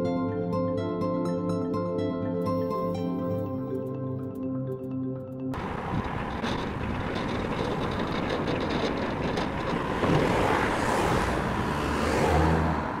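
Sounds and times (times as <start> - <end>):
low engine hum: 5.6 - 13.0
road noise: 5.6 - 13.0
vehicle passing: 5.6 - 13.0.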